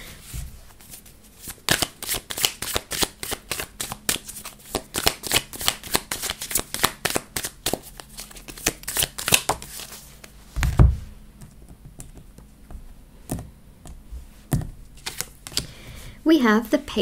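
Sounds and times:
cards being shuffled: 0.8s - 10.9s, 14.5s - 15.8s.

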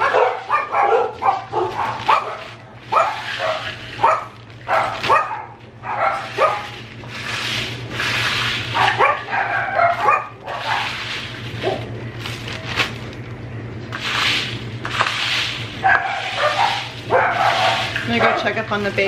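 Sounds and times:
dogs barking and yipping: 0.0s - 6.9s, 8.6s - 11.9s, 15.8s - 18.7s
caramel corn rustling into bag: 0.0s - 19.0s.

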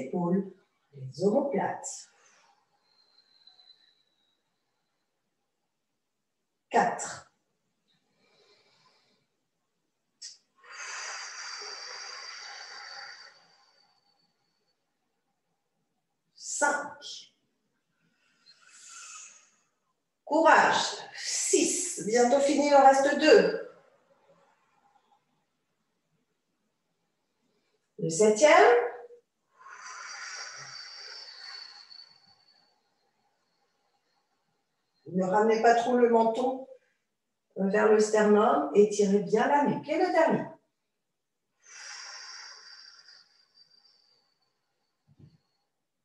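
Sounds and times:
forced exhalation with whistle: 10.2s - 14.0s, 29.6s - 32.8s
short sharp breath: 10.2s - 14.4s, 18.1s - 19.8s, 29.5s - 34.3s, 41.6s - 45.6s.

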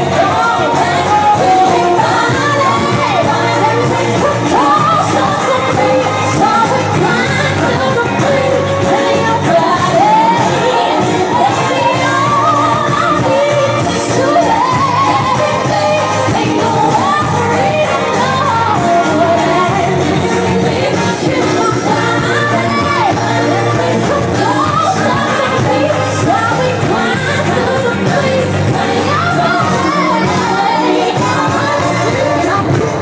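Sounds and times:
pop song with female vocal: 0.0s - 33.0s.

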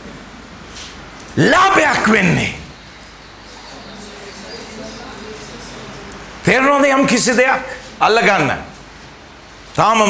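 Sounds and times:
faint background voices: 3.1s - 6.5s.

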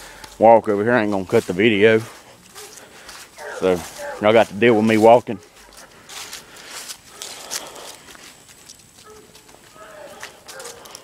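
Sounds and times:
footsteps crunching dry leaves: 0.0s - 11.0s.

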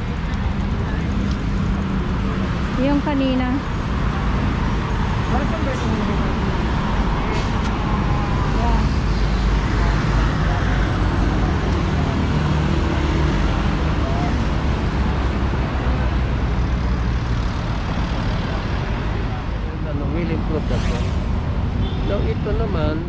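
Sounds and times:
road traffic passing: 0.0s - 23.0s.

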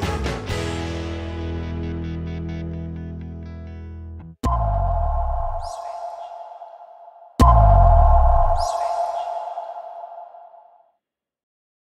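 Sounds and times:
electronic logo sting: 4.4s - 10.7s.

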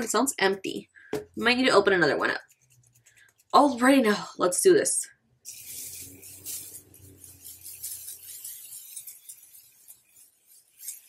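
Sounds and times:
spray bottle hissing spritzes: 5.4s - 11.0s.

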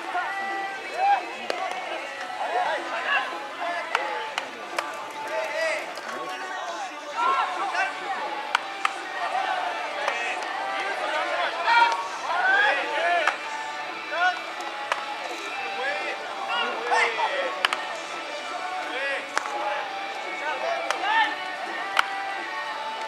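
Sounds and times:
voices calling and chattering: 0.0s - 23.0s
balls smacking into gloves: 8.4s - 9.0s, 14.6s - 15.1s, 17.6s - 18.0s, 19.3s - 19.6s, 21.8s - 22.2s
bat cracking on balls: 8.4s - 9.0s, 14.6s - 15.2s, 17.6s - 18.0s, 19.3s - 19.6s, 21.8s - 22.2s.

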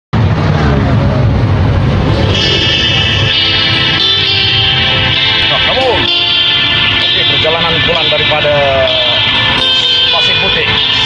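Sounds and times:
man's voice: 7.0s - 9.3s, 10.1s - 11.0s.

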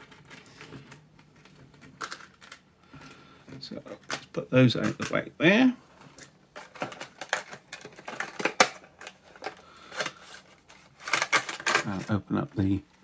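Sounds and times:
plastic packaging crinkling: 0.0s - 5.3s, 6.1s - 12.8s.

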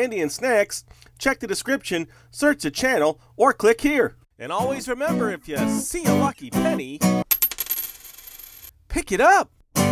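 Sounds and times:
coin clinking and ringing: 7.2s - 8.7s.

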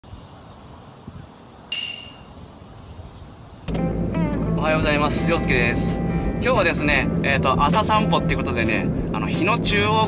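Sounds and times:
steady high hiss: 0.0s - 3.7s
music with low bass note: 3.7s - 10.0s.

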